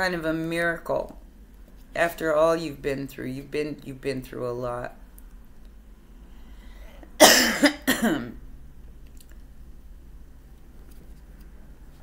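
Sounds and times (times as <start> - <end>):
woman coughing: 7.2 - 8.4.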